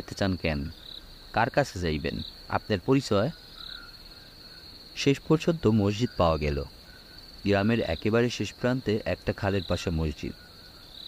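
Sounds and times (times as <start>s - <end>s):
man narrating: 0.0s - 0.7s, 1.4s - 3.4s, 5.0s - 6.7s, 7.4s - 10.4s
crickets chirring: 0.0s - 11.0s.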